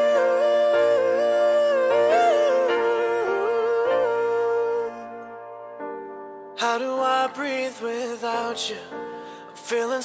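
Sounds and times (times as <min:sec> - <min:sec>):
wordless gliding vocal: 0:00.0 - 0:05.2
slow pop ballad: 0:00.0 - 0:10.0.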